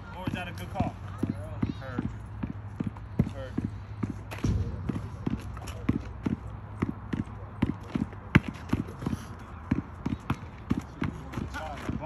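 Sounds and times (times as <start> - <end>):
basketball bouncing on asphalt: 0.1 - 12.0.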